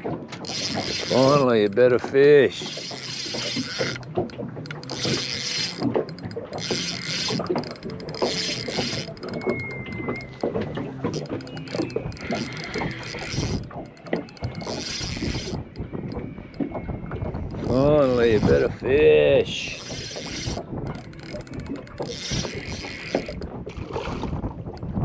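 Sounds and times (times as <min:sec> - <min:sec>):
fishing reel gears whirring and clicking: 0:00.0 - 0:24.9.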